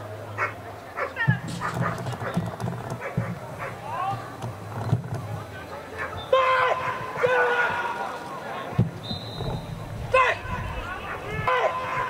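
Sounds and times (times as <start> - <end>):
voices: 0.0 - 12.0
dog yelping: 0.4 - 3.8.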